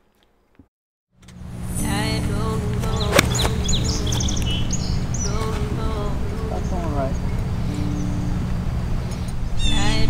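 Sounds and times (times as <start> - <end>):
birds chirping: 1.3 - 10.0
low rumble: 1.4 - 10.0
golf club hitting ball: 2.8 - 5.6.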